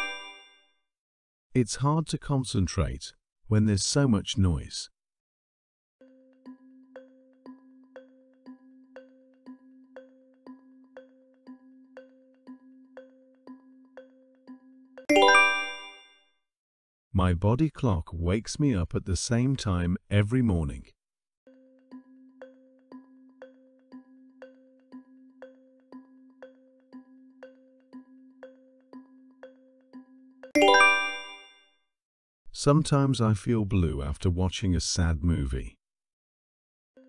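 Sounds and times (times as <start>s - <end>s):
bright chime: 0.0s - 0.7s, 15.1s - 16.3s, 30.6s - 31.7s
timer ticking: 6.4s - 15.1s, 21.9s - 31.2s.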